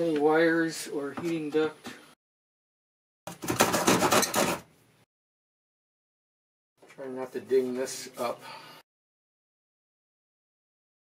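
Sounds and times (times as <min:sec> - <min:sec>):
hand saw cutting wood: 0:03.3 - 0:04.7.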